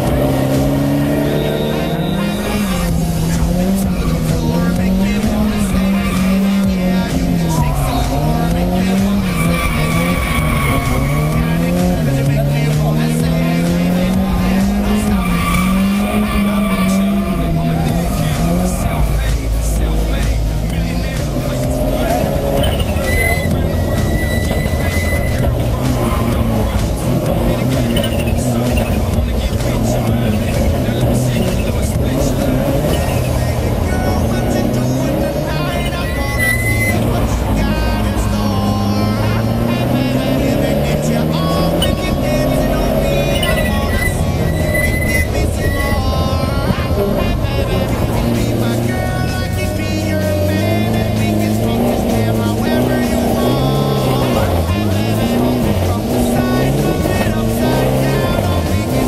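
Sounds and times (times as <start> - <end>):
tyre squeal: 0.0 - 19.5, 20.7 - 59.0
race car engine revving: 0.0 - 59.0.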